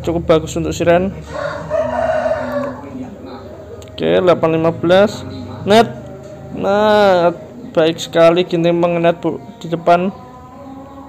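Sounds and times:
rooster crowing: 1.2 - 3.0.

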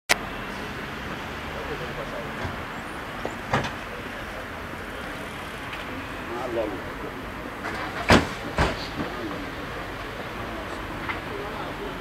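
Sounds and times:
street noise: 0.1 - 12.0.

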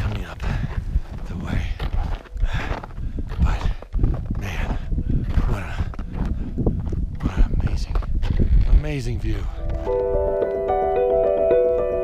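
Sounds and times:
footsteps crunching in snow: 0.0 - 10.1
wind rumbling on microphone: 0.0 - 10.4
person breathing hard: 0.3 - 1.2, 2.4 - 7.5.

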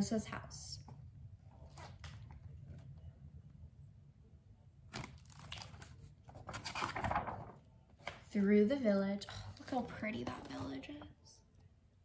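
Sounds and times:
book pages rustling: 1.6 - 3.1, 4.9 - 8.3.

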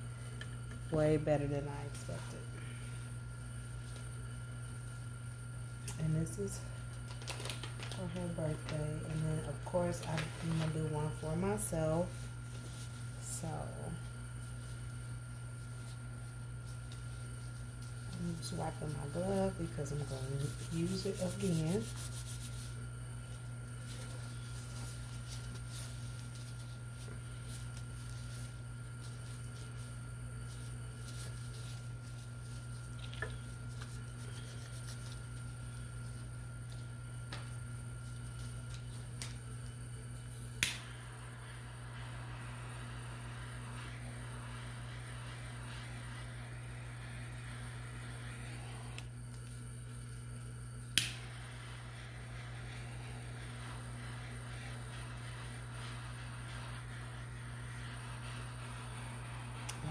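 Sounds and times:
electric motor humming: 40.4 - 50.2, 50.9 - 59.9.

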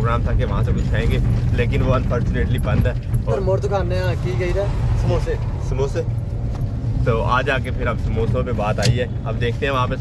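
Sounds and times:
road noise: 0.0 - 10.0
van engine rumble: 0.0 - 10.0.

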